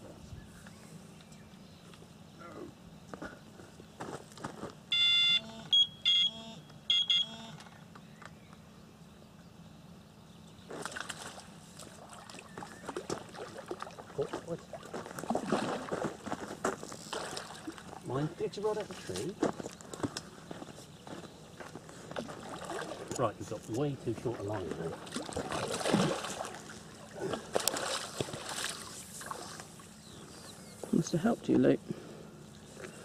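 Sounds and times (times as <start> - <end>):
bite alarm beeping: 4.9 - 7.6.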